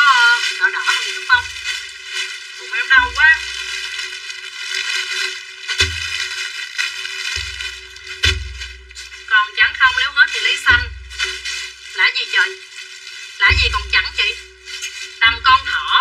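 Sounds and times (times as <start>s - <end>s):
plastic packaging crinkling: 0.0s - 16.0s.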